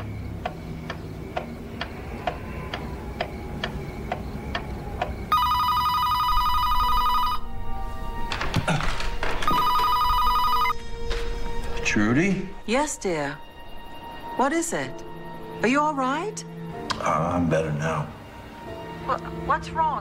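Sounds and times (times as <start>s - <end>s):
pendulum clock ticking: 0.0s - 5.8s
sustained underscore music: 0.0s - 20.0s
telephone ringing: 5.3s - 7.5s, 9.3s - 10.8s.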